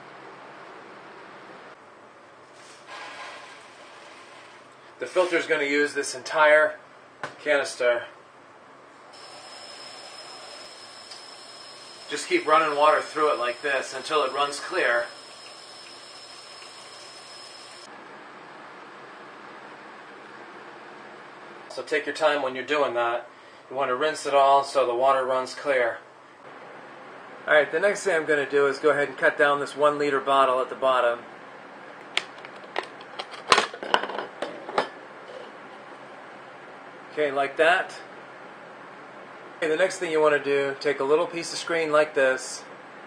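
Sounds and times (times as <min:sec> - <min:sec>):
faint high whine: 0:09.0 - 0:18.8.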